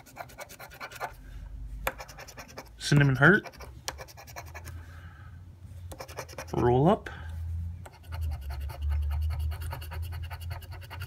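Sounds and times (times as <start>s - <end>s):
scraper scratching lottery ticket: 0.0s - 1.2s, 1.9s - 4.7s, 6.0s - 6.7s, 7.9s - 11.0s.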